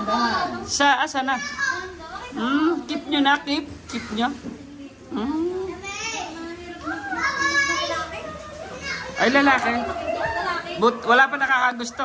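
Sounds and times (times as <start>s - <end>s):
small child's high-pitched voice: 1.4s - 2.4s, 5.7s - 9.5s.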